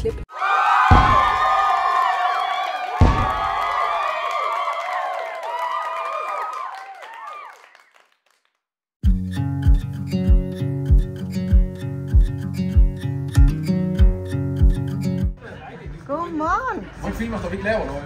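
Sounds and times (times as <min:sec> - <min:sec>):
crowd cheering and whooping: 0:00.3 - 0:08.0
confetti cannon popping: 0:00.9 - 0:01.6, 0:03.0 - 0:03.8.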